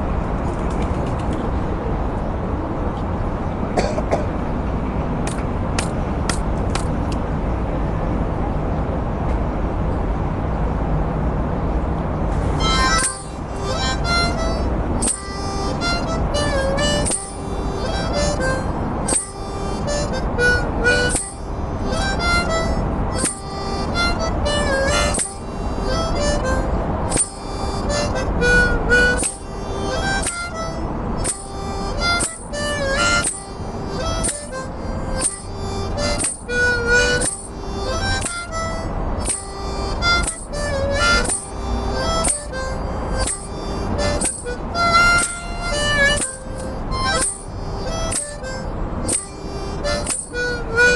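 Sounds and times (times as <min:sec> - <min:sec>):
low background rumble: 0:00.0 - 0:50.9
harmonica melody: 0:11.6 - 0:50.9.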